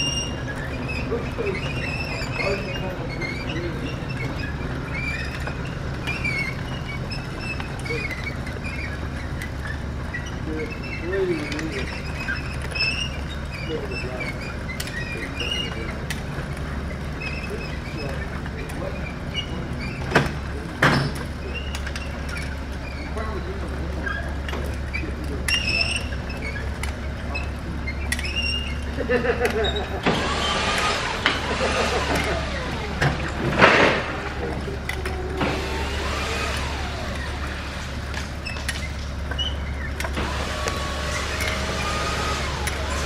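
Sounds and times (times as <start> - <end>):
conveyor motor humming: 0.0 - 43.0.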